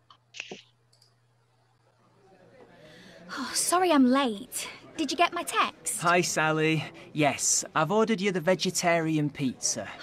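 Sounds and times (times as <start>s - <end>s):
computer mouse clicks: 0.1s - 1.2s.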